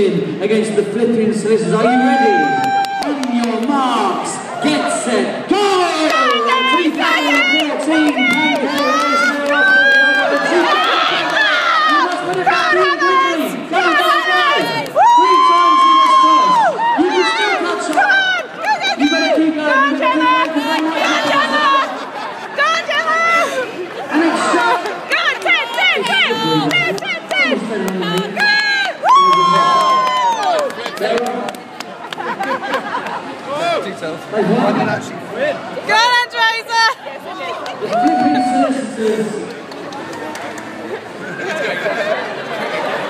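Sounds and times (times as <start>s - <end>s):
crowd cheering and shouting: 1.4s - 31.6s, 34.6s - 43.0s.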